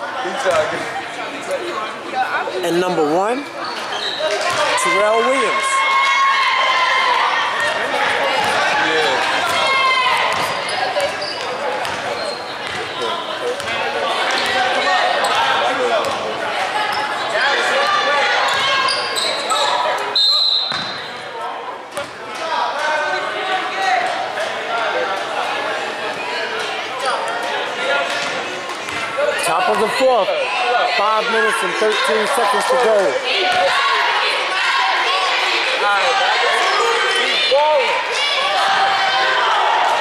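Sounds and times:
sneaker squeaks: 3.5s - 4.8s, 10.2s - 16.2s, 18.4s - 21.2s, 27.0s - 27.4s.

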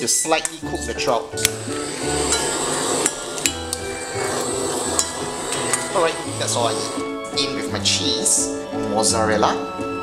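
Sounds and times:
kitchen torch blowing: 1.4s - 7.4s.

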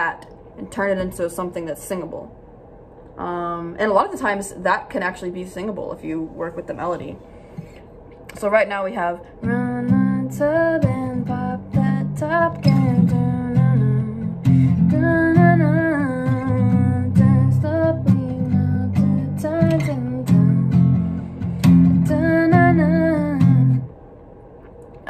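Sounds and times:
woman singing: 9.1s - 23.9s
acoustic guitar strumming chords: 9.4s - 23.9s.

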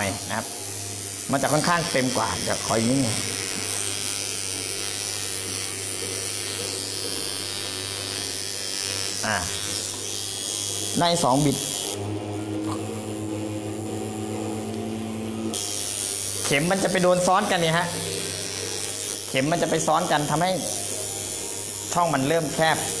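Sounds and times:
tattoo machine buzzing: 0.0s - 23.0s.

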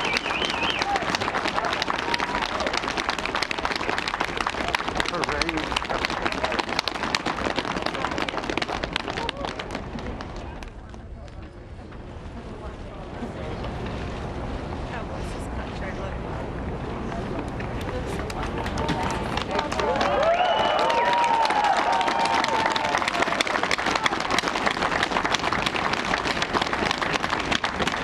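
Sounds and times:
audience applauding: 0.0s - 11.0s, 17.8s - 28.0s.

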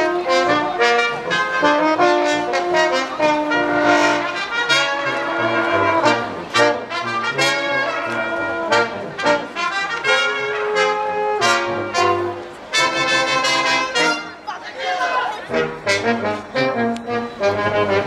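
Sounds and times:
brass ensemble playing brisk tune: 0.0s - 18.0s.

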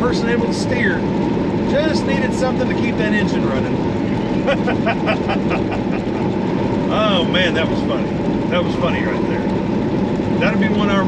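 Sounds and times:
road noise from inside cab: 0.0s - 11.0s
truck engine drone: 0.0s - 11.0s
man laughing: 4.3s - 6.4s.

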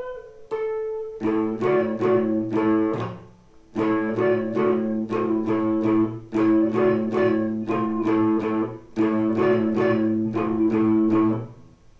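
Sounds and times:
electric guitar picked notes: 0.0s - 11.8s.

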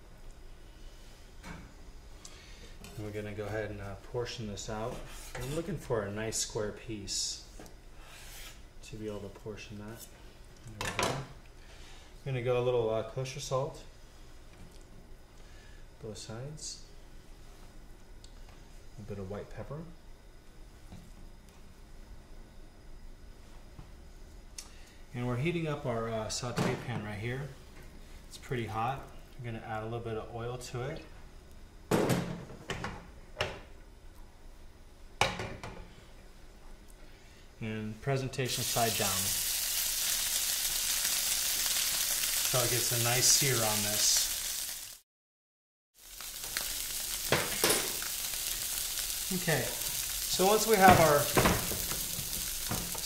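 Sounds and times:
steady low hum: 0.0s - 40.6s
fish sizzling in hot oil: 38.5s - 45.0s, 46.0s - 53.0s.

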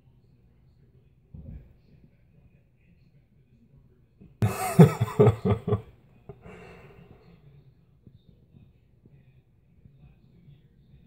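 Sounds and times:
person coughing: 4.4s - 7.0s
person speaking: 4.4s - 7.2s.

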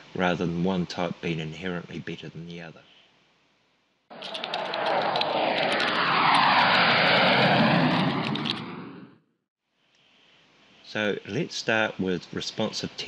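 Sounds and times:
aircraft fly-by: 4.1s - 9.2s.

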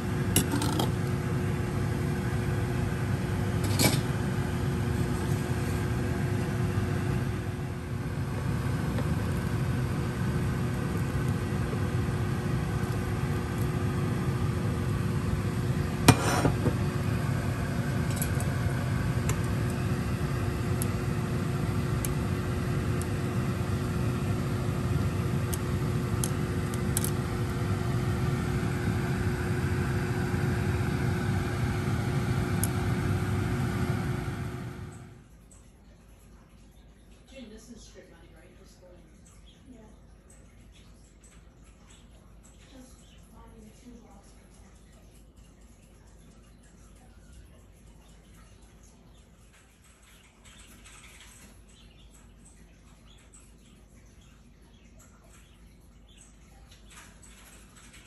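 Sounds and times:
exhaust fan motor hum: 0.0s - 35.5s.

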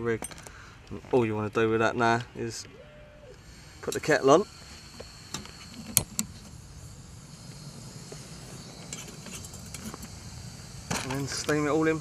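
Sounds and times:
gas burner hissing: 3.2s - 12.0s.

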